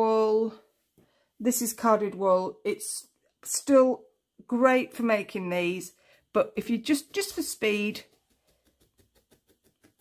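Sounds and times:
felting needle jabbing into wool: 0:06.5 - 0:10.0.

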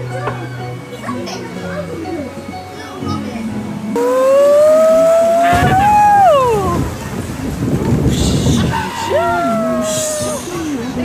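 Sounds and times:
long howl: 0:04.0 - 0:06.9, 0:09.0 - 0:10.5
low rushing noise: 0:04.0 - 0:10.6.

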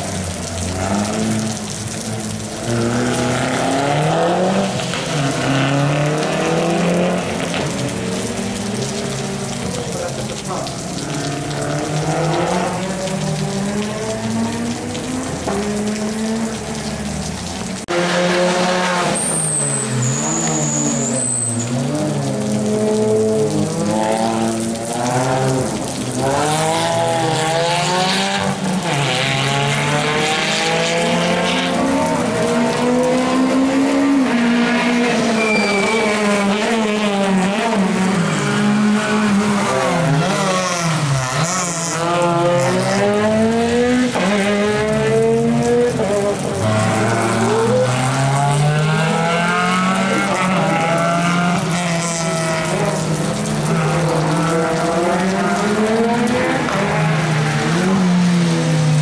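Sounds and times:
rally car engines revving: 0:00.0 - 0:59.0
high-pitched squeal: 0:35.2 - 0:36.6.

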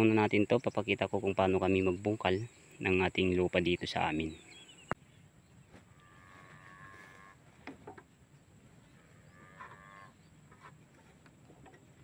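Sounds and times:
drawn-out animal calls: 0:05.7 - 0:08.0, 0:08.7 - 0:12.0.

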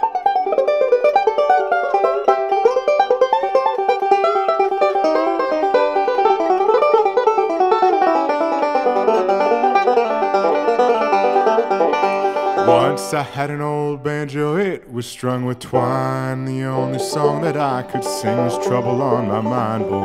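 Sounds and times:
banjo picking fast runs: 0:00.0 - 0:13.6, 0:15.7 - 0:20.0
bluegrass band backing: 0:00.0 - 0:13.8, 0:15.7 - 0:20.0.

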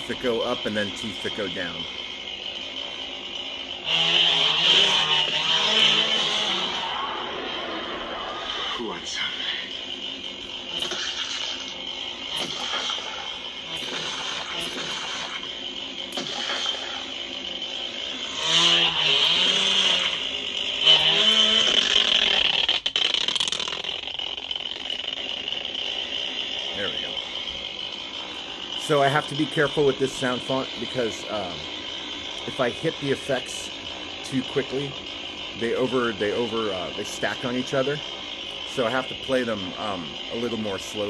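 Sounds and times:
lightsaber hum: 0:00.0 - 0:41.0.

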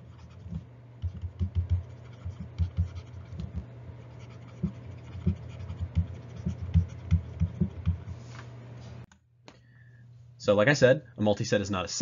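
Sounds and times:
stylus tapping and scratching: 0:00.0 - 0:08.2
steady low hum: 0:00.0 - 0:12.0.

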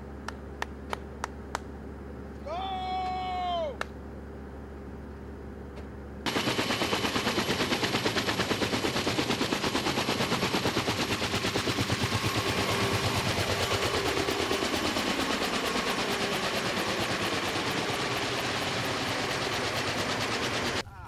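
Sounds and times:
faint engine whine: 0:00.0 - 0:20.8
helicopter rotor chop: 0:06.2 - 0:20.8.

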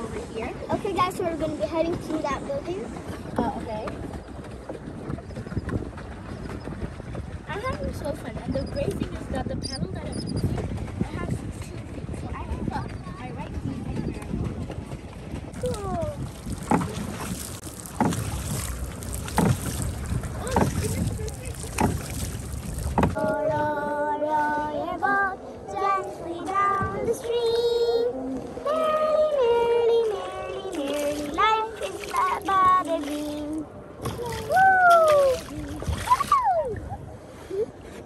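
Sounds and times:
wind buffeting microphone: 0:00.0 - 0:37.9
water splashing: 0:14.2 - 0:23.6, 0:26.0 - 0:37.1.

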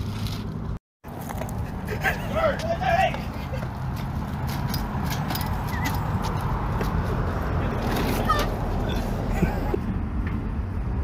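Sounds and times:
dolly wheels rumbling over asphalt: 0:00.0 - 0:09.8.

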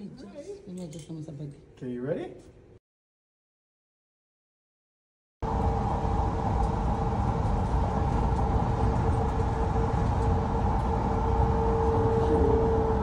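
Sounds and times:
low road rumble: 0:05.4 - 0:13.0
mid-pitched engine hum: 0:05.4 - 0:13.0.

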